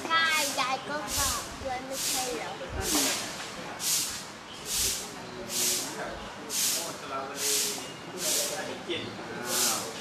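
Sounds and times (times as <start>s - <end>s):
hissing puffs of air: 1.1s - 8.7s, 9.4s - 10.0s.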